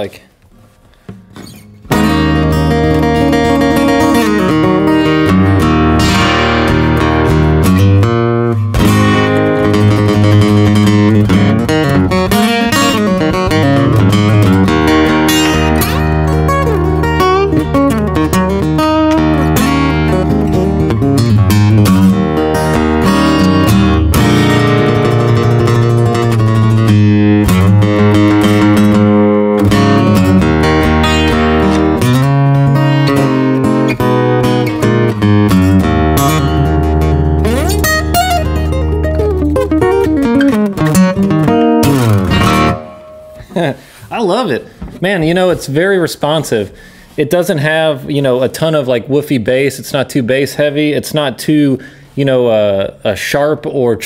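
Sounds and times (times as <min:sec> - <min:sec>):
fingerpicked acoustic guitar: 0:00.5 - 0:44.2.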